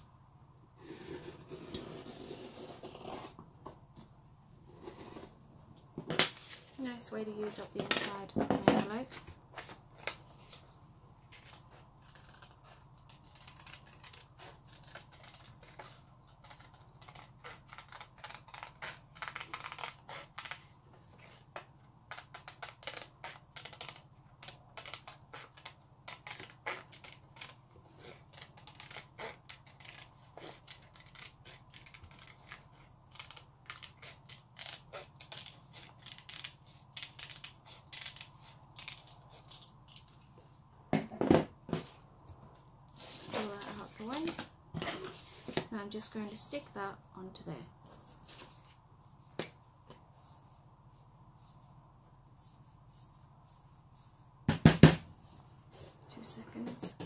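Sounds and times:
scissors snipping paper: 0:11.4 - 0:20.7, 0:22.1 - 0:40.1.

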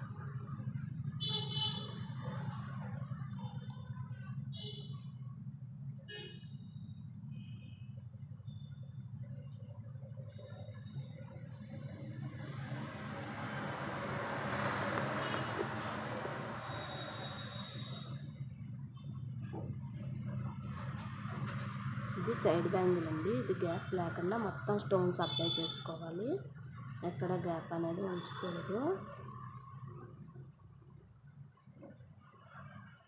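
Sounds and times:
vehicle passing: 0:10.8 - 0:30.8.

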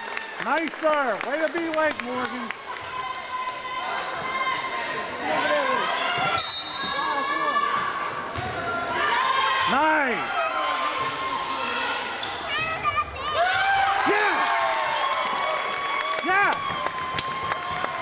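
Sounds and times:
people shouting in echoing gym: 0:03.0 - 0:14.4.

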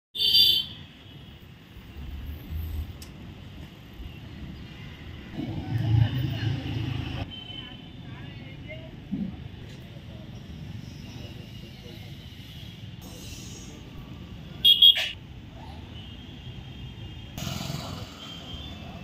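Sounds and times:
vehicle engine: 0:04.8 - 0:07.2, 0:17.4 - 0:19.0.

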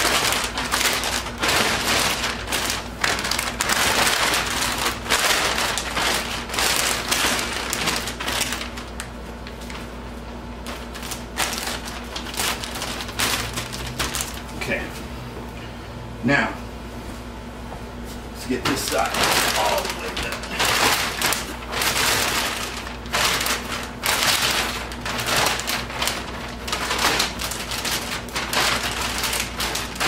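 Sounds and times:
plastic sheeting crinkling: 0:00.0 - 0:15.0, 0:18.4 - 0:30.0.

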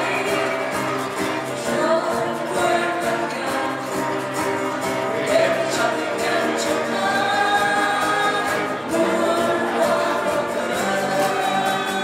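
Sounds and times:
acoustic guitars: 0:00.0 - 0:12.0
mixed group singing in harmony: 0:00.0 - 0:12.0.

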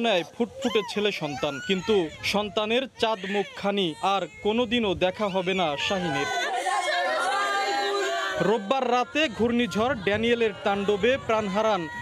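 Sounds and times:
people crying and wailing: 0:00.0 - 0:12.0.

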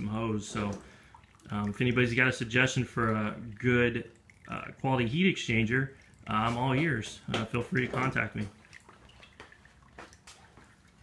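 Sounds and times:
water trickling and dripping: 0:00.0 - 0:11.0.

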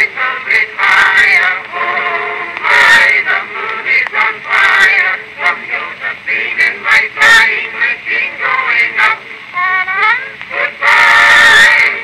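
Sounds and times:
man and woman singing duet: 0:00.0 - 0:12.0.

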